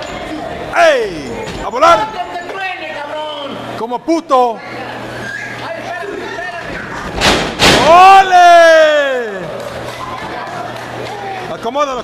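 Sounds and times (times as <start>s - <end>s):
man yelling: 7.8s - 9.5s.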